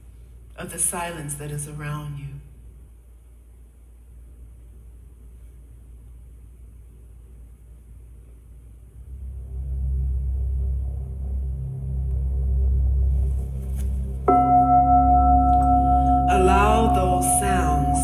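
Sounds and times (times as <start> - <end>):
deep low drone: 7.8 - 18.0
faint higher tones: 9.0 - 18.0.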